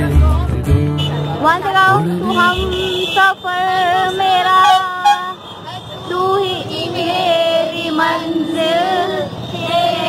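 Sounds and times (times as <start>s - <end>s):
children singing together: 6.6s - 10.0s.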